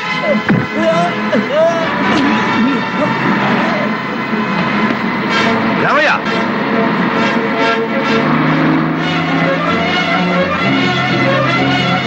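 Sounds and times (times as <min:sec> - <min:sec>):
man shouting: 0:00.0 - 0:04.0
background film score: 0:00.0 - 0:12.0
van engine: 0:00.0 - 0:12.0.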